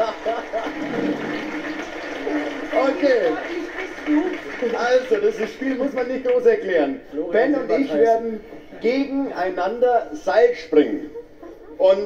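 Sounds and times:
audience applauding through tv speaker: 0:00.0 - 0:06.9.

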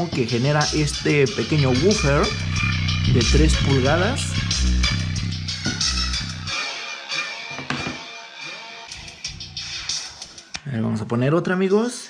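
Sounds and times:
bass-heavy music through a woofer: 0:00.0 - 0:06.6, 0:08.9 - 0:10.3.

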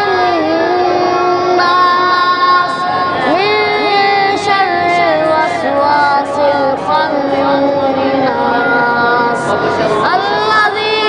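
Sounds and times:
boy chanting melodically: 0:00.0 - 0:11.0.

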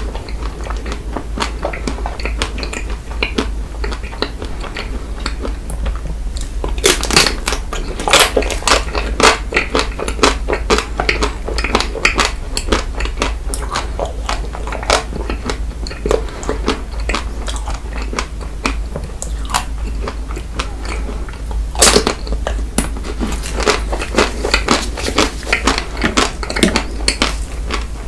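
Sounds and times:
biting and chewing ice cream bar: 0:00.0 - 0:28.0.

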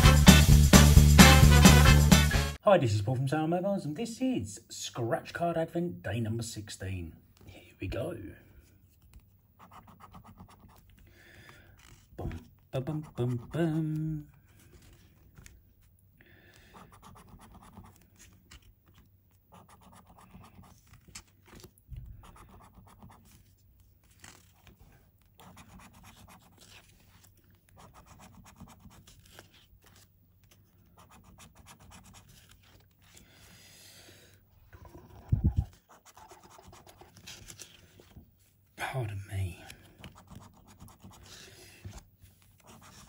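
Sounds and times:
coin scratching a scratchcard: 0:35.1 - 0:37.2.

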